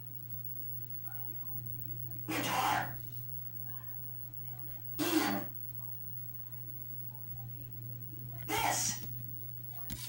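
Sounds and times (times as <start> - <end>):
steady low hum: 0.0 - 10.0
person clearing throat: 2.3 - 3.0, 5.0 - 5.6.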